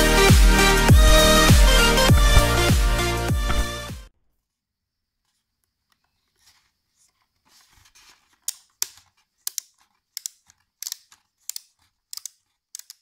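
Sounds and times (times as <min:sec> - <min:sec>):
helmet dial clicking: 0:09.4 - 0:13.0.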